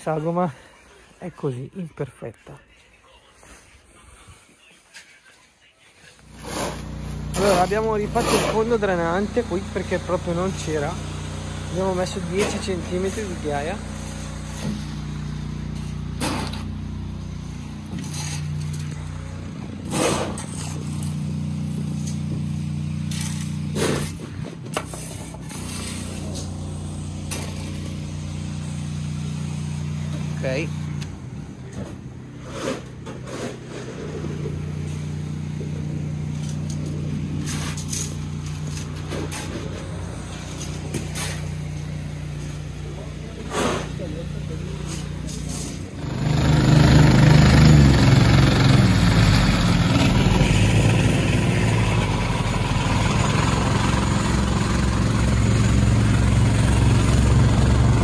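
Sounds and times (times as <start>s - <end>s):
shovel scraping gravel: 6.2s - 11.0s, 11.7s - 29.3s, 32.4s - 54.8s
plate compactor engine running: 6.2s - 58.0s.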